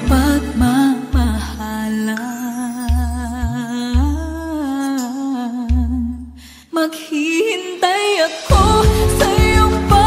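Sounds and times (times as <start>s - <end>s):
pop ballad backing music: 0.0s - 6.2s, 6.9s - 10.0s
person singing with vibrato: 0.0s - 10.0s.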